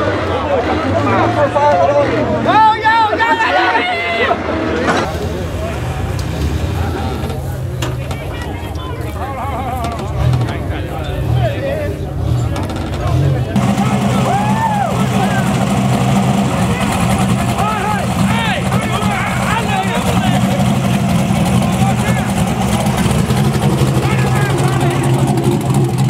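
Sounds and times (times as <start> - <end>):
spectators whooping and shouting: 1.0 - 4.6, 13.6 - 22.8
buggy engine idling: 5.0 - 26.0.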